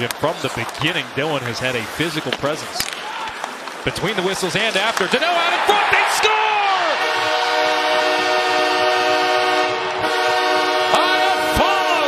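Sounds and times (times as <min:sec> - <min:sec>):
goal horn chord: 0:06.9 - 0:12.0.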